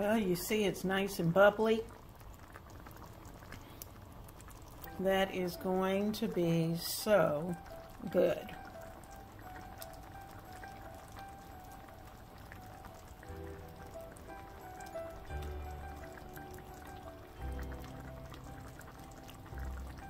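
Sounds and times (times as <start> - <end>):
stew bubbling and popping: 0.0 - 20.0
soft background music: 4.8 - 20.0.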